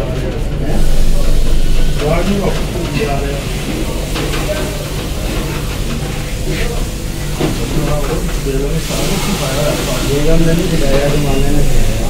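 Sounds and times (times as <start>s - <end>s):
indistinct voices: 0.0s - 12.0s
low rumble: 0.6s - 4.5s.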